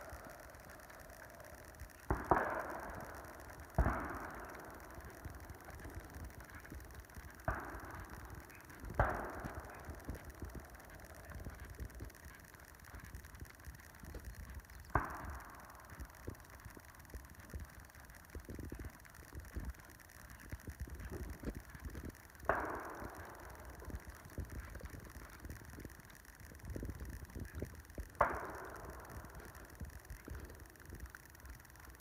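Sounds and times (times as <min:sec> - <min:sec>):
horse hooves thudding on sand: 0:03.8 - 0:30.6.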